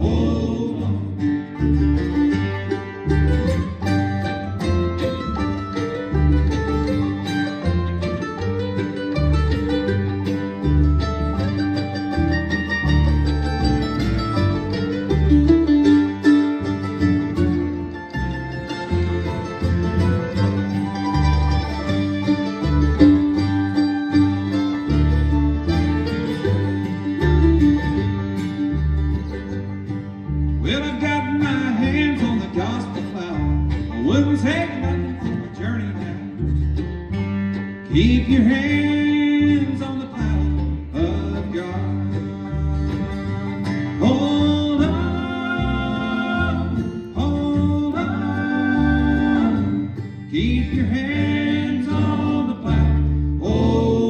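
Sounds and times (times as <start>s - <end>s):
bluegrass band playing: 0.0s - 54.0s.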